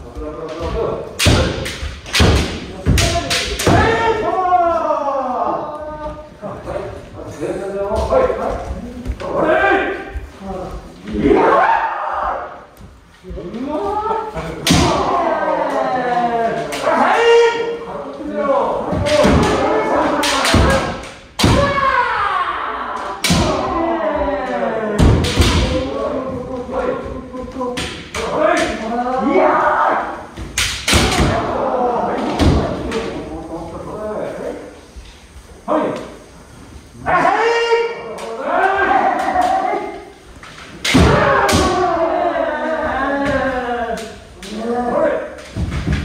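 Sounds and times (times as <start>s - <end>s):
bamboo swords striking: 0.5s - 4.2s, 14.6s - 15.3s, 18.9s - 22.0s, 23.2s - 23.7s, 25.0s - 26.0s, 30.5s - 31.5s, 40.8s - 41.9s
fencers shouting: 1.2s - 5.8s, 9.1s - 10.4s, 13.4s - 33.3s, 36.9s - 45.4s.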